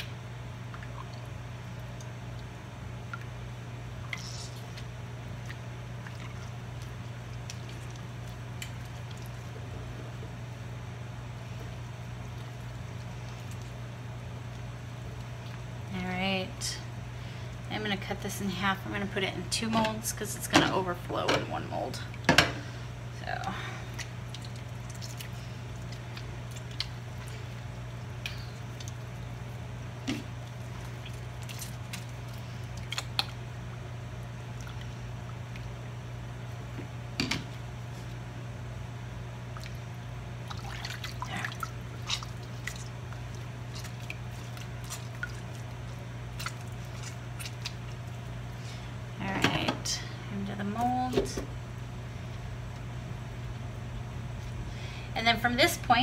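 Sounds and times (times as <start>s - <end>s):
steady low hum: 0.0s - 56.0s
whey dripping and splashing: 0.6s - 9.6s, 23.2s - 36.8s, 39.4s - 48.8s.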